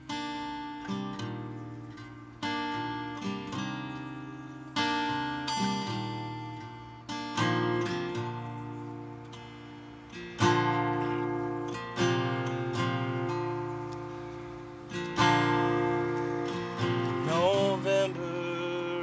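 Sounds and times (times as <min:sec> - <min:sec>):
acoustic guitar chords: 0:00.0 - 0:19.0.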